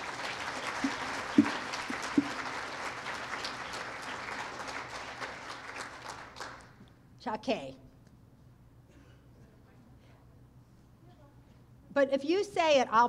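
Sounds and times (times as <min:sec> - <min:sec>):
audience applauding: 0:00.0 - 0:06.8
sharp claps: 0:00.0 - 0:06.9.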